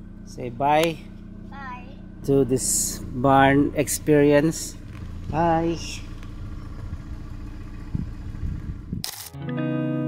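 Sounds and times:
car engine idling: 0.0s - 9.1s.

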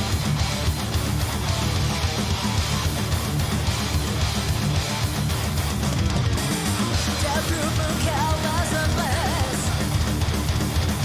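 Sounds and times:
distorted electric guitars: 0.0s - 11.0s
rapid drums: 0.0s - 11.0s.

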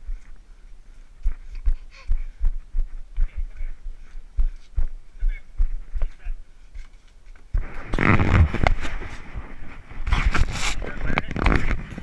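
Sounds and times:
camera jostling thumps: 10.0s - 12.0s.

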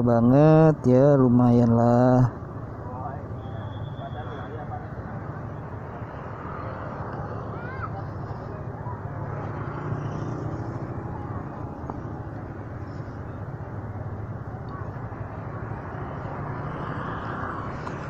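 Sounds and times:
road and traffic noise: 0.0s - 18.0s.

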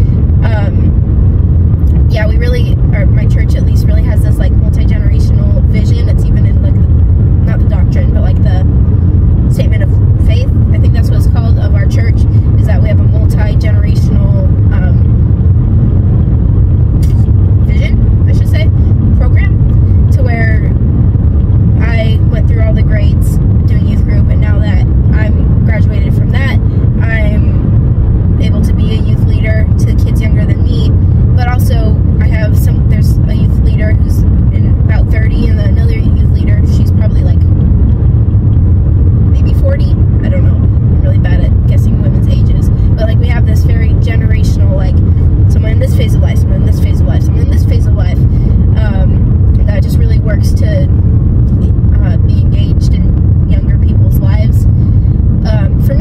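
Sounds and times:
person talking: 0.0s - 0.9s, 1.9s - 6.8s, 7.5s - 8.7s, 9.5s - 15.1s, 17.0s - 20.7s, 21.8s - 27.6s, 28.4s - 37.4s, 39.4s - 50.9s, 51.6s - 54.6s, 55.4s - 56.0s
car road and engine rumble: 0.0s - 56.0s.

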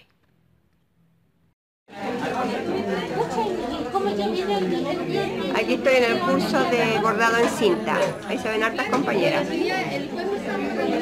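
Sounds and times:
women chattering: 2.0s - 11.0s.

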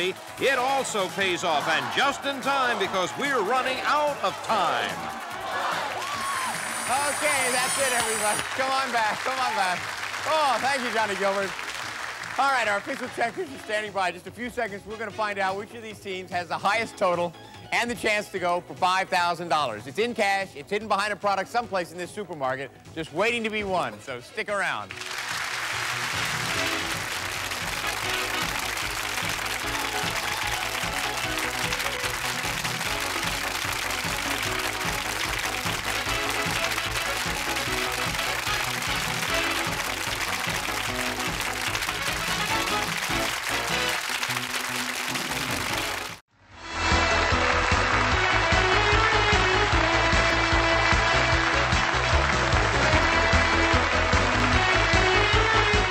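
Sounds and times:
beat-driven electronic music: 0.0s - 11.2s, 25.8s - 46.2s
studio audience applauding: 0.0s - 14.1s, 24.9s - 46.2s, 47.1s - 55.9s
game-show music: 0.0s - 55.9s.

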